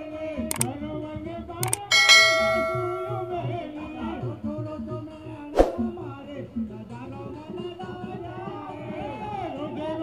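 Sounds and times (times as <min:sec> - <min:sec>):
person singing: 0:00.1 - 0:10.0
sharp clicks: 0:00.5 - 0:00.7, 0:01.6 - 0:01.9
metal plate struck and ringing: 0:01.9 - 0:03.6.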